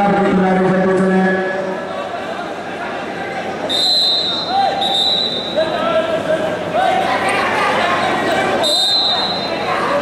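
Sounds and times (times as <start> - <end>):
murmur of voices: 0.0 - 10.0
high whistle blasts: 3.7 - 5.6, 8.6 - 9.6.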